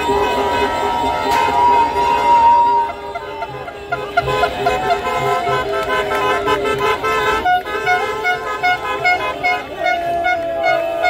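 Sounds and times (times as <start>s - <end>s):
car horns honking: 0.0s - 11.0s.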